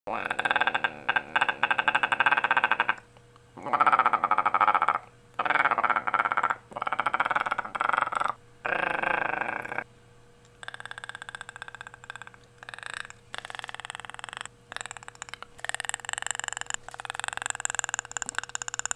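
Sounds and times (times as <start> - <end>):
person imitating chattering rattle: 0.1 - 9.9, 10.6 - 18.9
person making rapid rattling clicks: 0.2 - 3.0, 3.8 - 9.8, 10.5 - 18.9.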